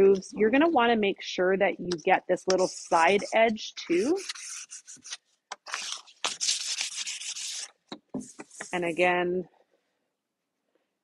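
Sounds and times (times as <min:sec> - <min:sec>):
sandpaper rubbing on wood: 0:02.6 - 0:03.4, 0:04.0 - 0:05.2, 0:05.8 - 0:07.7.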